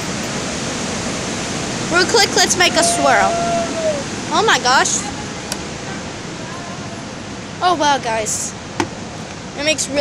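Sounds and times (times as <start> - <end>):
wind on microphone: 0.0 - 7.6.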